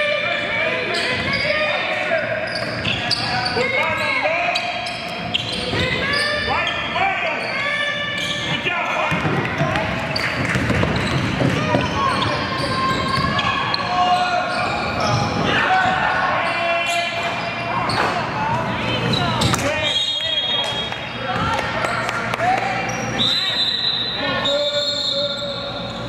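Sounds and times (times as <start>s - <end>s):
voices echoing in hall: 0.0s - 26.0s
sneakers squeaking on hardwood: 2.3s - 18.4s
basketball dribbling: 9.1s - 13.5s
referee whistle blowing: 19.8s - 20.9s, 23.2s - 25.8s.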